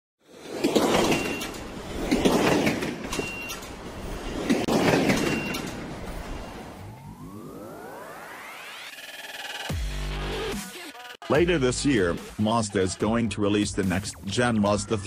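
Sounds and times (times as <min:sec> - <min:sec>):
brief high beep: 0:01.1 - 0:01.6, 0:05.2 - 0:06.8
rising synth sweep: 0:06.1 - 0:10.6.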